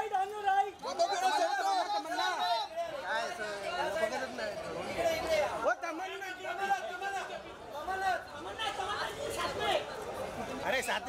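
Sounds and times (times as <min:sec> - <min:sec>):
people calling and shouting: 0:00.0 - 0:11.0.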